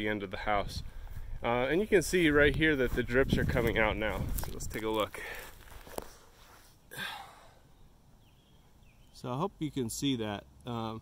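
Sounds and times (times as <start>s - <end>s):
microphone handling rustle: 0.6s - 6.8s.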